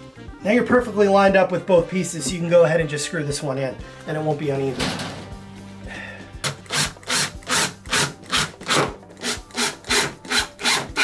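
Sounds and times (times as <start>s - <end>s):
impact driver driving a screw: 6.4s - 11.0s.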